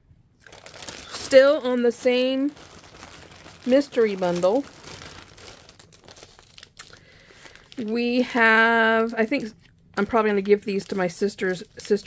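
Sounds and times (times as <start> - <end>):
plastic packaging crinkling: 0.4 - 12.0.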